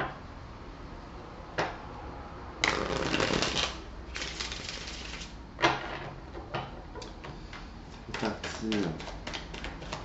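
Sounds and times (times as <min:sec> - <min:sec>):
cards shuffling: 0:02.7 - 0:05.3.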